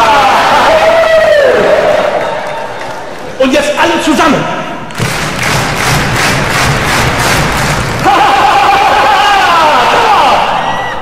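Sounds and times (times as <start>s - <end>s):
audience stamping feet: 4.9s - 8.4s.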